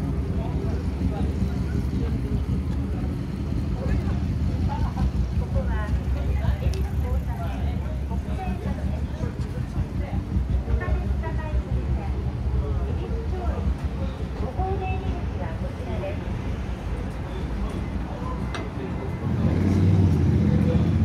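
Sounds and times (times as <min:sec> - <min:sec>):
low rumble of city traffic: 0:00.0 - 0:21.0
passers-by talking: 0:00.0 - 0:21.0.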